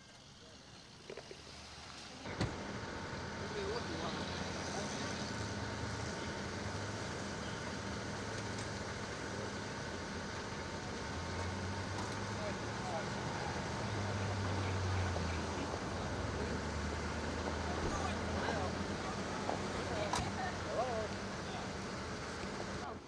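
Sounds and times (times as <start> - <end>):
car engine running: 0.0 - 23.0
street traffic noise: 0.0 - 23.0.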